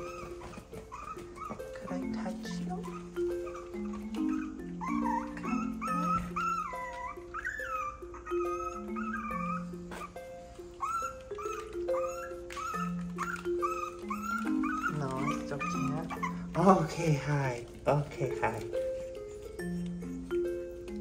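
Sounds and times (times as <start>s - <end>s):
background music with soft chords: 0.0s - 21.0s
small dogs whining: 0.0s - 21.0s.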